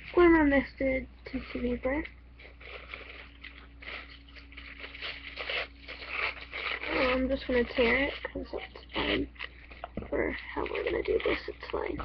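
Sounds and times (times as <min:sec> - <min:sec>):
faint steady hum: 0:00.0 - 0:12.0
tissue paper rustling: 0:01.3 - 0:12.0.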